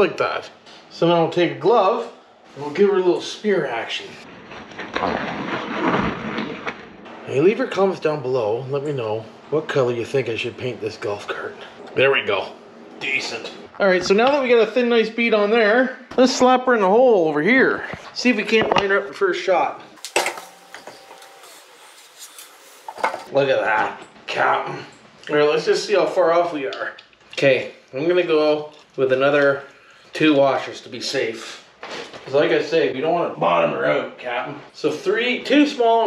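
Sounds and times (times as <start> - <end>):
rubber glove stretching and snapping: 4.4 - 7.1
motor rubbing and scraping: 20.5 - 23.3.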